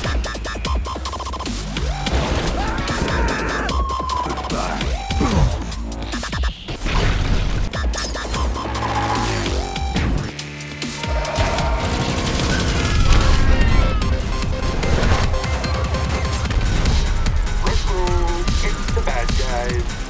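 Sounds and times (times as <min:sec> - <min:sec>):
film score music: 0:00.0 - 0:20.0
rapid blaster shots: 0:11.4 - 0:19.2.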